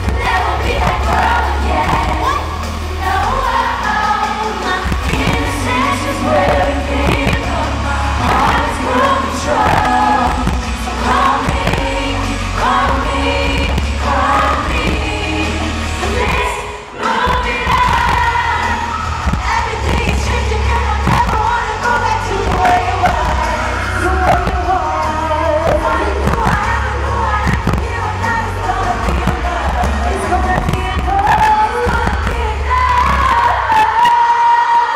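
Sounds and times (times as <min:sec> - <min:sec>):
amplified backing track heavy bass: 0:00.0 - 0:34.1
female pop group singing: 0:00.0 - 0:34.9.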